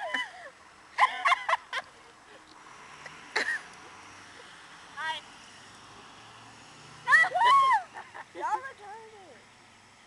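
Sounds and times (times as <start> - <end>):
faint outdoor background: 0.0 - 10.0.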